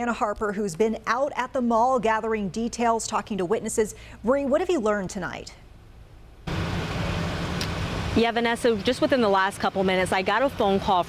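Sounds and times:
road traffic: 6.4s - 11.0s.

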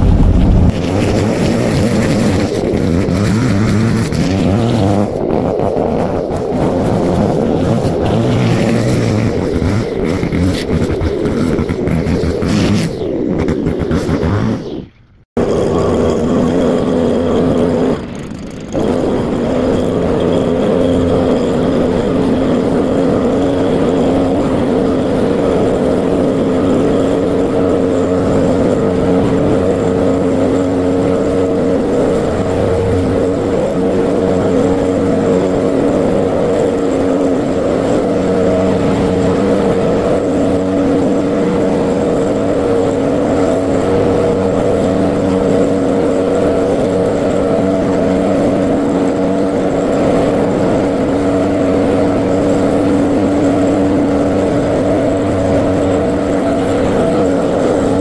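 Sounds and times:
leaf blower running: 0.0s - 14.6s, 15.4s - 58.0s.

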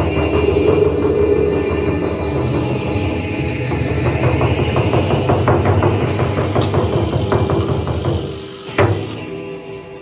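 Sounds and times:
electric guitar: 0.0s - 10.0s
hand percussion: 0.0s - 10.0s.

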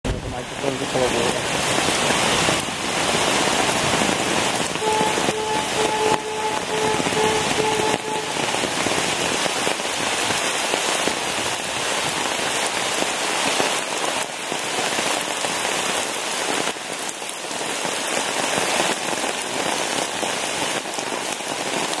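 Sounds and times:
heavy rain on water and pavement: 0.0s - 22.0s.

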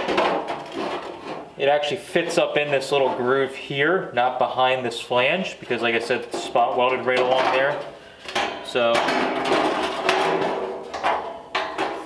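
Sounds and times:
sheet metal clanking and scraping: 0.0s - 3.5s, 5.7s - 12.0s.

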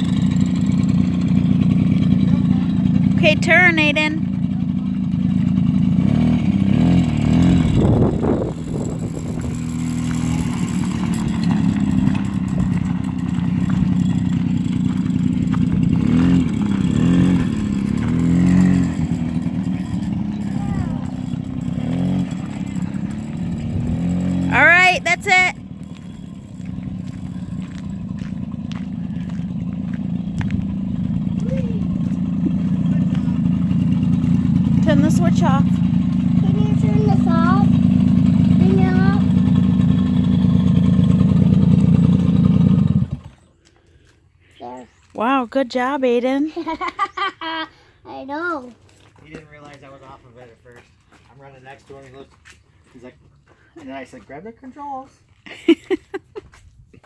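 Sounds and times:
small two-stroke engine running: 0.0s - 44.0s.

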